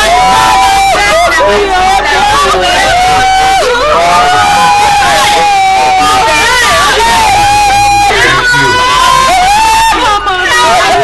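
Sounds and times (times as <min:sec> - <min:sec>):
women wailing and crying: 0:00.0 - 0:11.0.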